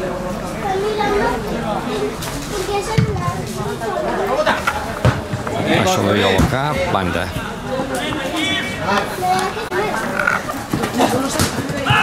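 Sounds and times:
teenagers shouting: 7.5 - 12.0.

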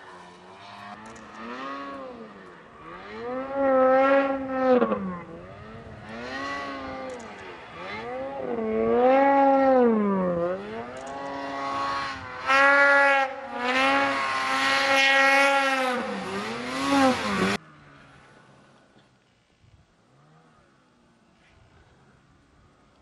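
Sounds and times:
snowmobile engine revving: 0.0 - 18.7.

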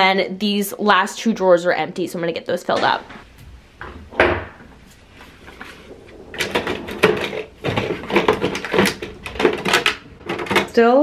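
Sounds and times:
wooden drawer sliding open: 3.8 - 10.7
plastic items clicking and clattering: 5.4 - 11.0.

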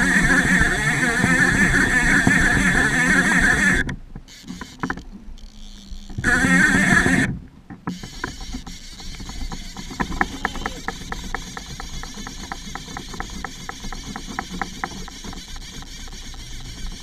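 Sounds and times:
fishing reel clicking: 0.0 - 7.3, 7.9 - 17.0
fishing reel drag buzzing: 0.0 - 17.0.

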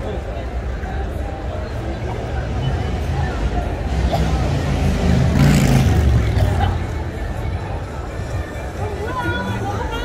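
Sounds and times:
low street rumble: 0.0 - 10.0
murmur of voices: 0.0 - 10.0.

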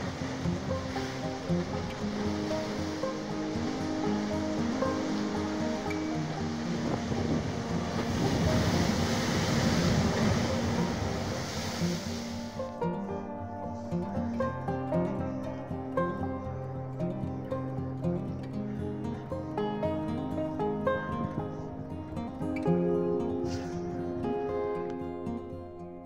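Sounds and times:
ocean surf churning on rocks: 0.0 - 24.7
instrumental music: 0.0 - 26.0.

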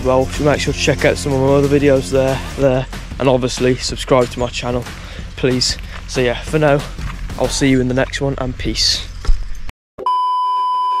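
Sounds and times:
steady test-tone beep: 10.0 - 11.0.

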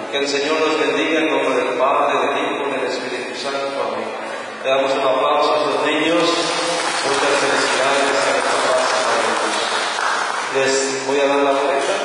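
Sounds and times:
congregation reciting a prayer: 5.6 - 12.0.

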